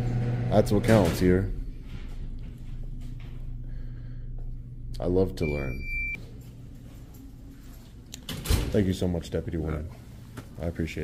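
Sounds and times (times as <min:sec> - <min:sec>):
low room hum: 0:00.0 - 0:11.0
high electronic beep: 0:05.4 - 0:06.2.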